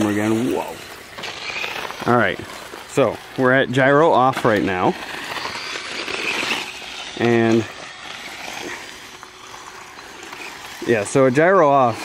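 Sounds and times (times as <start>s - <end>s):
rc motorcycle on sand and gravel: 0.0s - 12.0s.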